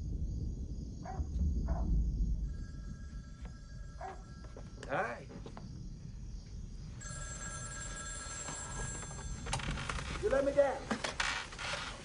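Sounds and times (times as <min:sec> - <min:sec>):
telephone ringing: 0:02.5 - 0:05.1, 0:07.0 - 0:10.7.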